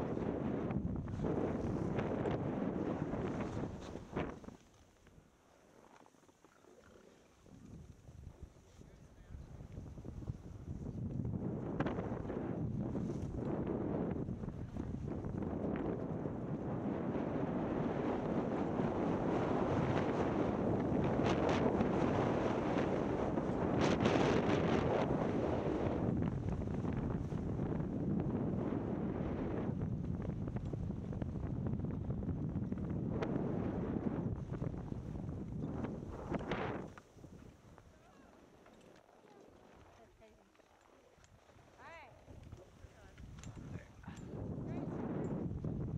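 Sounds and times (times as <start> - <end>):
wind buffeting microphone: 0.0 - 4.6, 7.4 - 38.0, 41.3 - 45.9
skis scraping on snow: 1.1 - 9.0.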